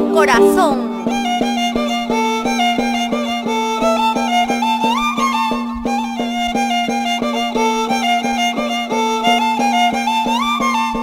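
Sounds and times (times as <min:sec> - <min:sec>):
violin melody: 0:00.0 - 0:11.0.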